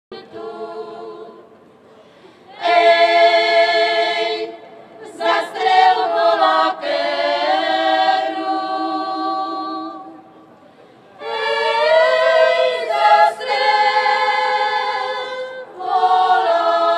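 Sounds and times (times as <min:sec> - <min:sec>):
women singing a cappella: 0:00.1 - 0:01.6, 0:02.5 - 0:10.3, 0:11.2 - 0:16.9.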